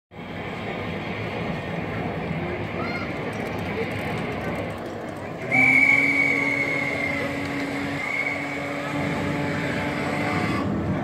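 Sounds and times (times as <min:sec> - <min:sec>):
vehicle mechanical noise: 0:00.2 - 0:11.0.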